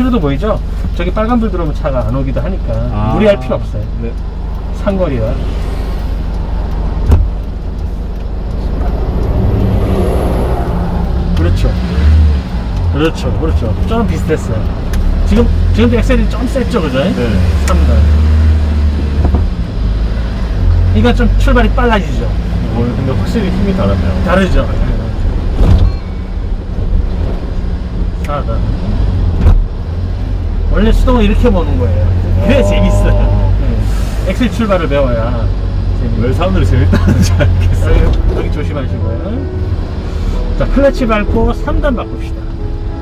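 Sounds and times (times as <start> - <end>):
deep engine rumble: 0.0 - 43.0.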